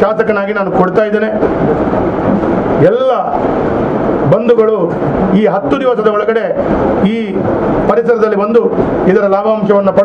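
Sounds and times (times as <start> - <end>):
loud steady noise: 0.0 - 10.0.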